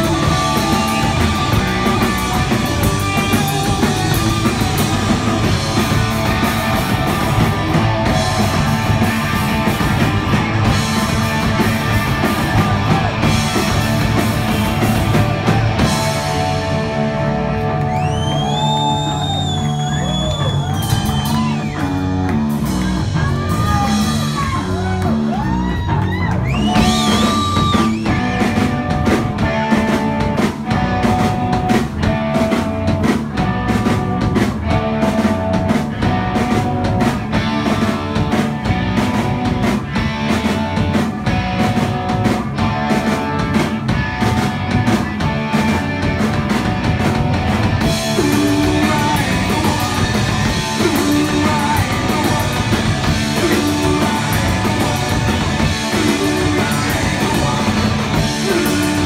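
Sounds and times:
bass guitar: 0.0s - 59.0s
drum kit: 0.0s - 59.0s
electric guitars: 0.0s - 59.0s.

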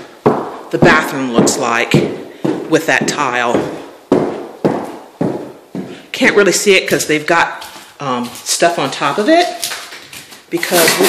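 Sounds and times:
footsteps echoing in empty room: 0.0s - 11.0s.

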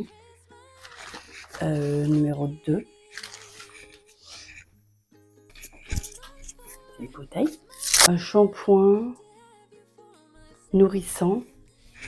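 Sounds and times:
wrapping paper rustling: 0.8s - 2.4s, 3.1s - 4.2s.

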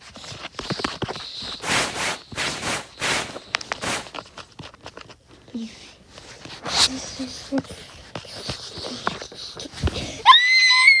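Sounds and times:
high-pitched scream: 10.2s - 11.0s.

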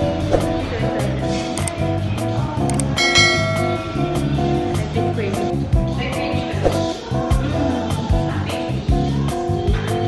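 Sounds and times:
guitar-led music: 1.4s - 7.8s.

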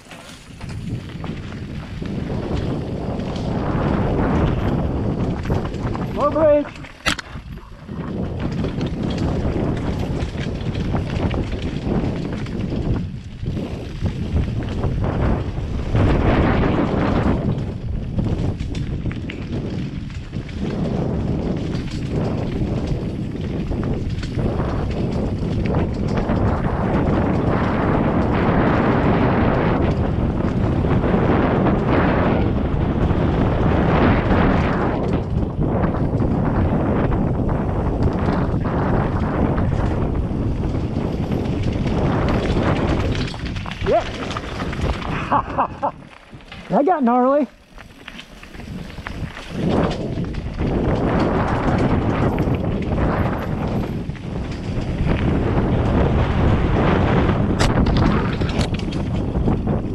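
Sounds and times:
bike tyres striking rocks: 0.0s - 59.9s
wind rushing over microphone: 0.0s - 59.9s.

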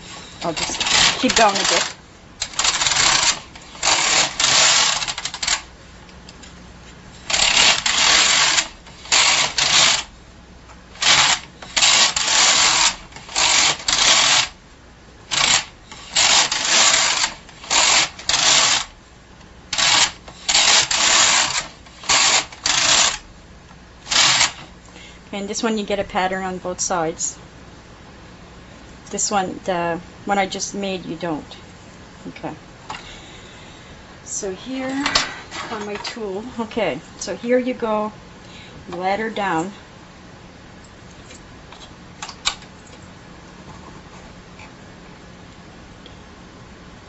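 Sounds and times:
knitting machine carriage rasping: 0.0s - 5.6s, 7.3s - 10.1s, 11.0s - 14.6s, 15.3s - 18.9s, 19.7s - 23.2s, 24.0s - 24.7s.

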